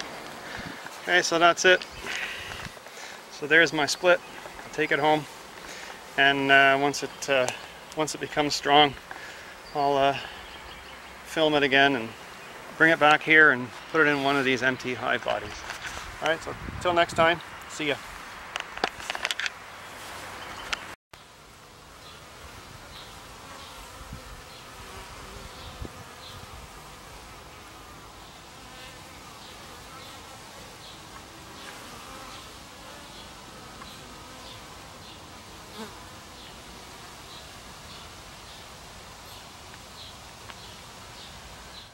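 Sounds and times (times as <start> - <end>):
honeybees buzzing: 0.0 - 16.4, 19.9 - 41.9
camera handling knocks and rustling: 18.6 - 19.6.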